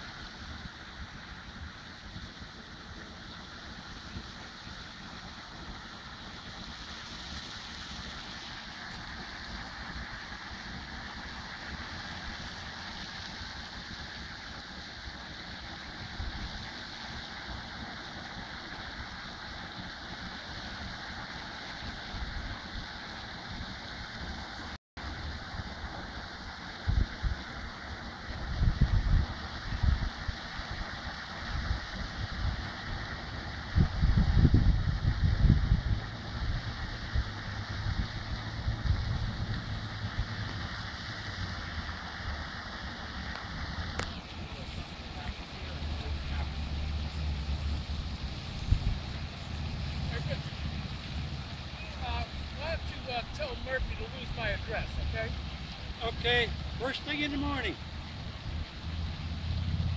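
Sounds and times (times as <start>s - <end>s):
outdoor background hiss: 0.0s - 59.9s
wind buffeting microphone: 21.8s - 59.9s.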